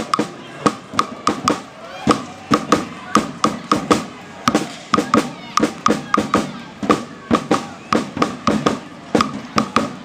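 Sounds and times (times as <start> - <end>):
low crowd haze: 0.0 - 10.0.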